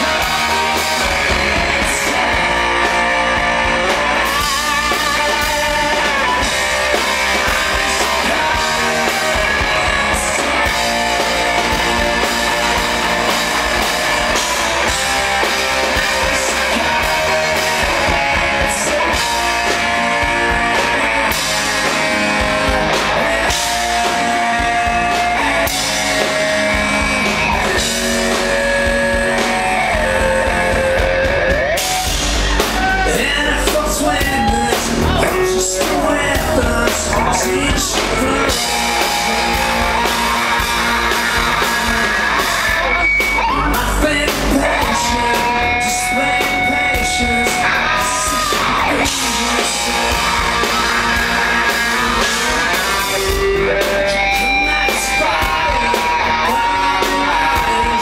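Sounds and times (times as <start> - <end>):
drum kit: 0.0 - 58.0
electric guitar: 0.0 - 58.0
live rock band: 0.0 - 58.0.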